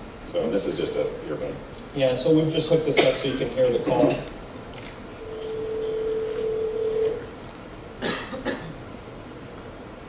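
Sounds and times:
telephone ringback tone: 5.2 - 7.2.

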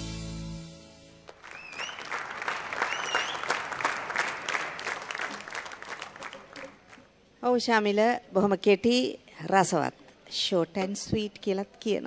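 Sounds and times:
audience clapping and cheering: 1.2 - 7.1
rising whistles: 1.4 - 3.6.

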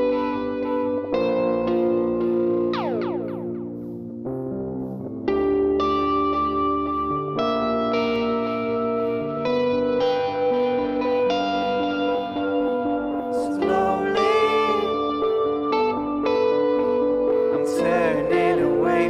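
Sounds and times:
electric guitar with echo: 0.0 - 19.0
falling pitch swoop: 2.7 - 3.8.

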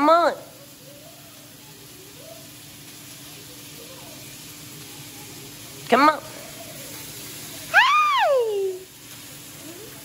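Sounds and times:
food sizzling in a frying pan: 0.0 - 10.0.

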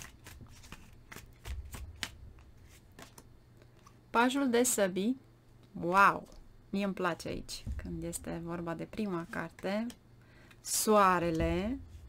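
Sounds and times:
cards being shuffled: 0.0 - 4.0.

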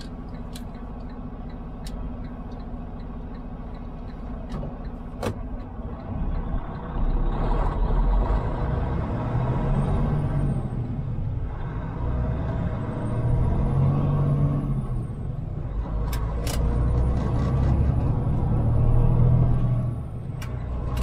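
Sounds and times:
truck diesel engine: 0.0 - 21.0.

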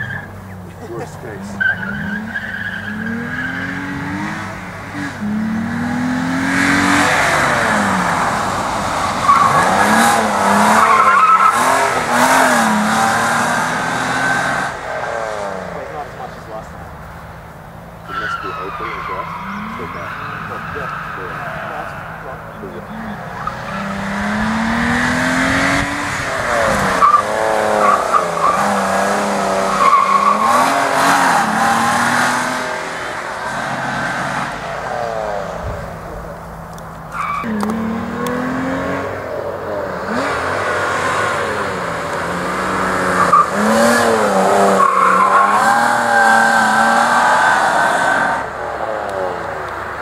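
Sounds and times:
car engine revving: 0.0 - 50.0
tyres squealing: 0.0 - 50.0.

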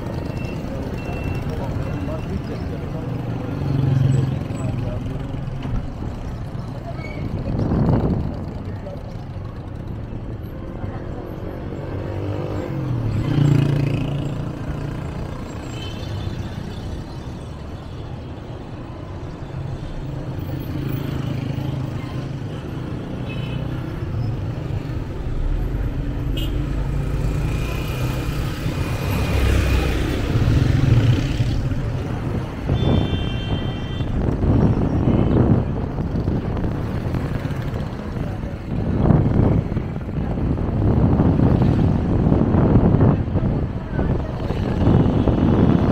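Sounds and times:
engine and road rumble: 0.0 - 45.9
vehicles passing: 0.0 - 45.9.

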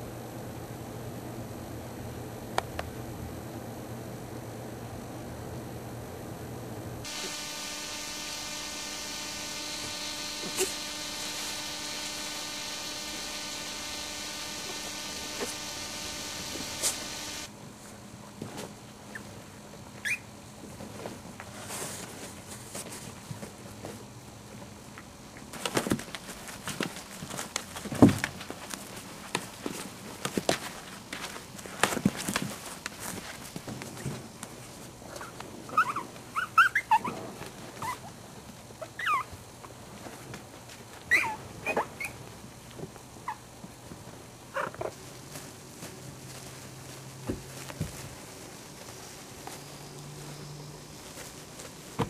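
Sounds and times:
soft scuffling: 25.6 - 35.4, 44.8 - 52.0
puppies squeaking and whimpering: 35.7 - 37.2, 38.8 - 39.3, 41.1 - 42.2.

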